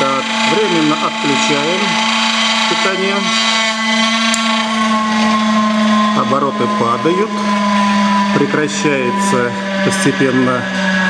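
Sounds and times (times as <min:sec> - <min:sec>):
electric motor hum with high whine: 0:00.0 - 0:11.0.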